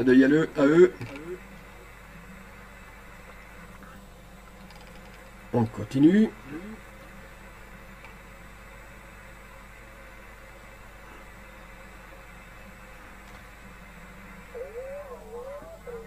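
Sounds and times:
electrical mains hum: 0.0 - 16.0
wavering voice-like sound: 6.4 - 6.9, 14.5 - 16.0.

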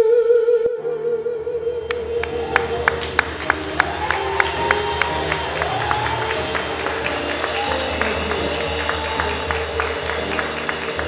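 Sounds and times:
long held notes: 0.0 - 11.0
sharp steady beat: 1.9 - 11.0.

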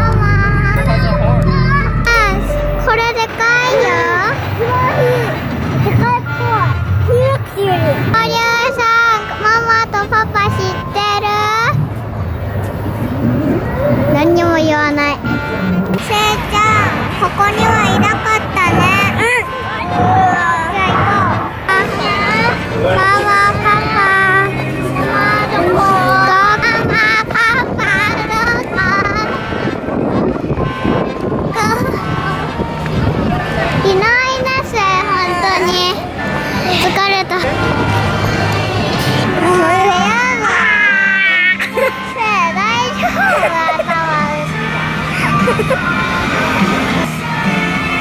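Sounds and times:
child singing sliding notes: 0.0 - 4.4, 20.3 - 29.4
crowd murmur: 0.0 - 48.0
wind on microphone: 26.6 - 34.6.

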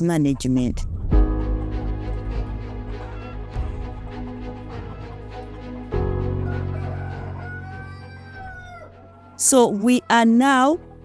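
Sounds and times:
intro music: 0.8 - 7.3
rooster crowing: 2.8 - 10.1.

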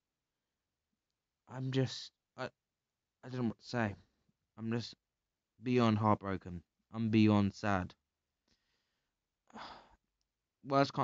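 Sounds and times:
man sighing: 9.5 - 10.0.

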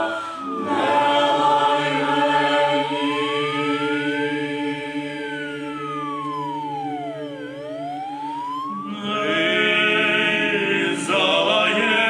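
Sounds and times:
held choral chord: 0.0 - 8.1, 8.7 - 12.0
siren wailing: 0.0 - 12.0.

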